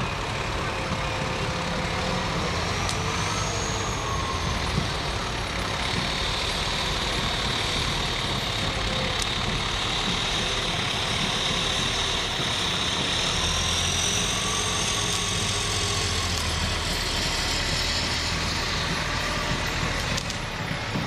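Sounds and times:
diesel engine idling: 0.0 - 21.0
steady high whine: 0.0 - 21.0.

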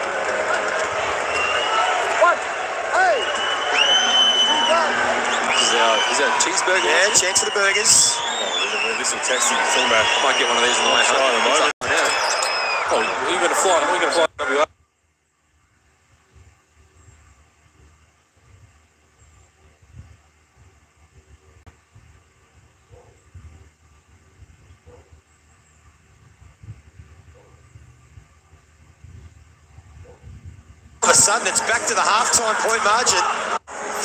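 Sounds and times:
broadcast voices: 0.0 - 14.7, 31.0 - 34.0.

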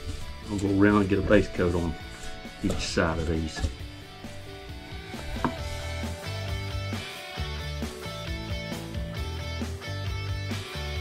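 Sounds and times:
instrumental music with held chords: 1.2 - 11.0.

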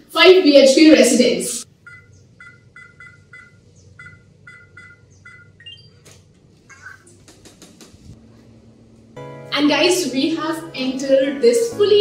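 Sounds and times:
keypad beeps: 1.8 - 6.0.

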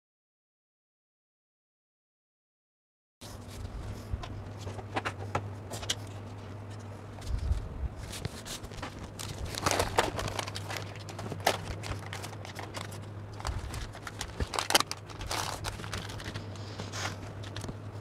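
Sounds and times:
paper rustling and crinkling: 3.2 - 18.0.

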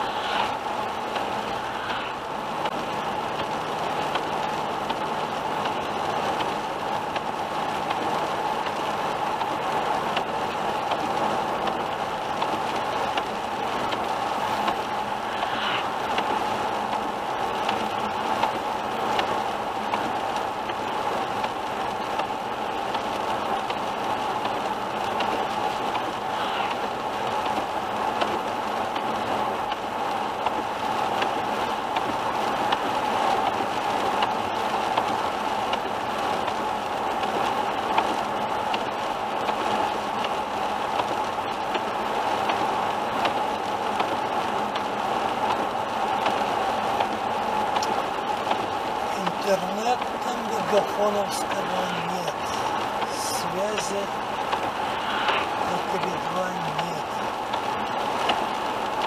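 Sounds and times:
tyre and road noise: 0.0 - 59.0.

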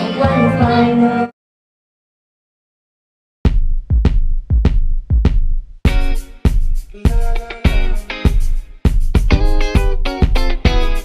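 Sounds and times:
backing music: 0.0 - 1.3, 3.5 - 11.0
woman singing into a microphone: 0.0 - 1.3.

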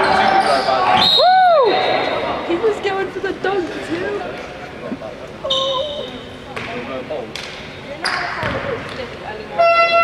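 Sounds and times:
shoe squeak: 5.4 - 6.4
basketball bouncing on wooden floor: 8.4 - 8.8.

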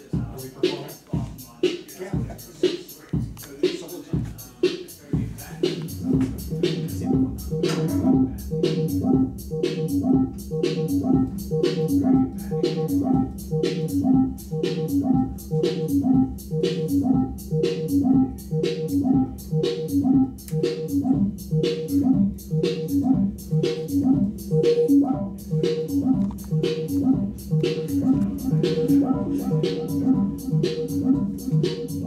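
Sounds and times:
modular synthesizer sequence: 6.0 - 32.0.

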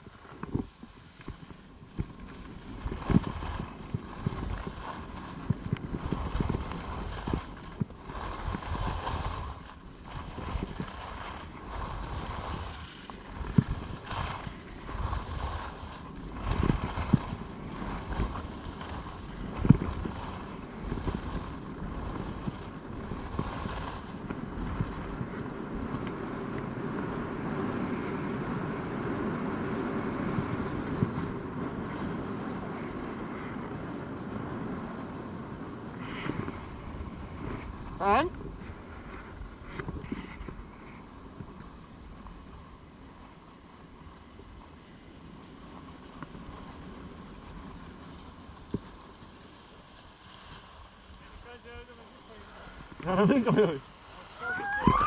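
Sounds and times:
wind buffeting microphone: 0.0 - 42.7, 52.4 - 55.0
skis scraping over snow: 0.0 - 55.0.

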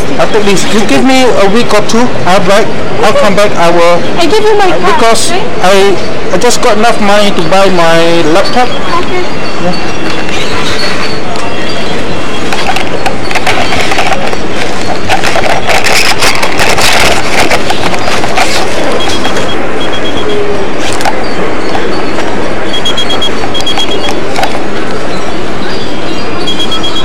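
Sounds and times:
mall crowd noise: 0.0 - 27.0
camera microphone handling noise: 12.4 - 19.5, 20.8 - 21.2
short high electronic beeps: 18.8 - 20.4, 21.2 - 24.2, 26.4 - 27.0.

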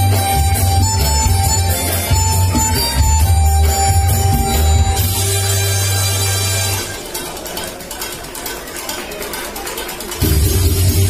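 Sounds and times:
harmonica melody: 0.0 - 7.0
backing track with heavy bass: 0.0 - 7.3, 10.1 - 11.0.

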